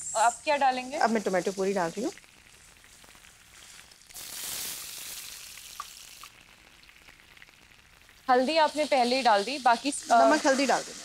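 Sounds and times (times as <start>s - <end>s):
loud sizzling: 0.0s - 6.6s, 7.4s - 11.0s
onions frying in oil: 0.0s - 11.0s.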